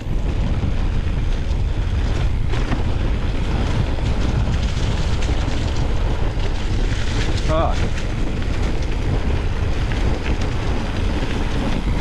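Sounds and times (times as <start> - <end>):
bike rattling and clicking: 0.0 - 12.0
tyres rolling over dirt and leaves: 0.0 - 12.0
wind buffeting microphone: 0.0 - 12.0.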